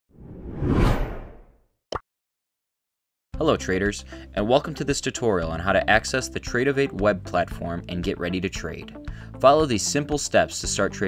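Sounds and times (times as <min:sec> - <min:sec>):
whoosh with low rumble: 0:00.1 - 0:01.5.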